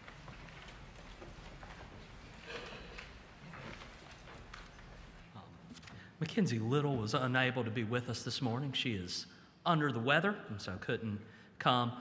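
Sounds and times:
footsteps on wooden floor: 0.0 - 5.2.

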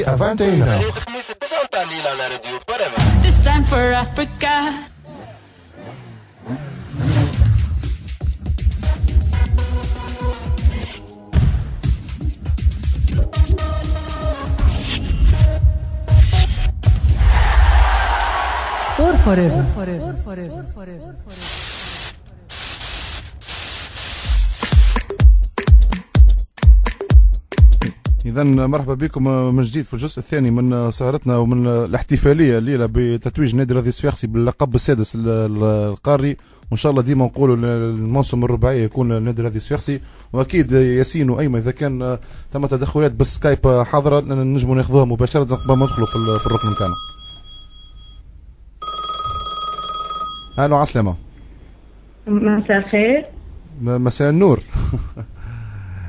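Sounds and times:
dance music: 7.6 - 11.1, 11.9 - 14.7, 18.8 - 21.6, 24.3 - 28.2
white noise hiss bursts: 21.3 - 25.1
electronic call ringtone: 45.4 - 48.2, 48.8 - 50.7.

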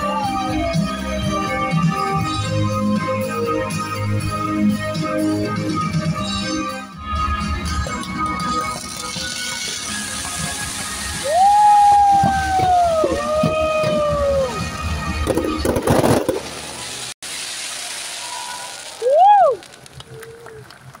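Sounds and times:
spectators whooping cheers: 0.0 - 1.2, 11.2 - 14.8, 17.7 - 21.0
music: 0.0 - 16.4
fireworks popping and crackling: 8.6 - 21.0.

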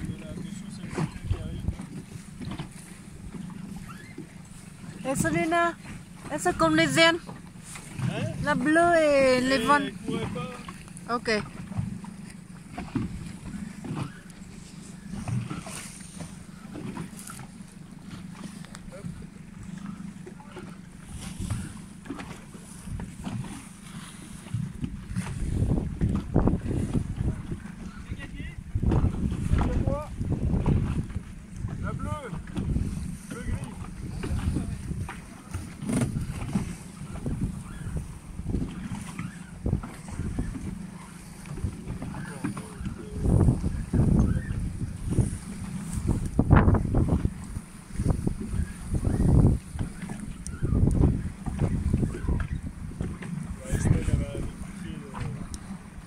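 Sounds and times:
water splashing against hull: 0.0 - 56.0
wind gusting over microphone: 24.4 - 56.0.

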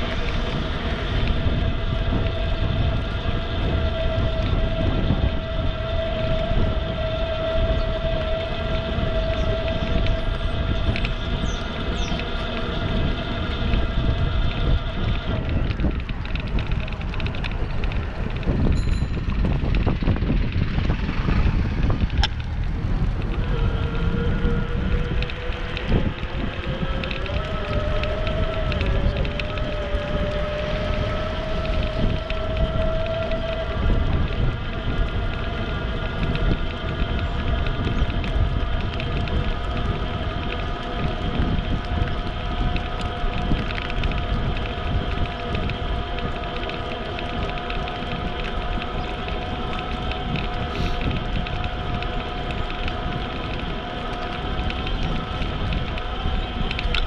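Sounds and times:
bicycle tyre and road noise: 0.0 - 57.0
steady whine rising in pitch: 0.0 - 57.0
wind rumbling on microphone: 0.0 - 57.0.

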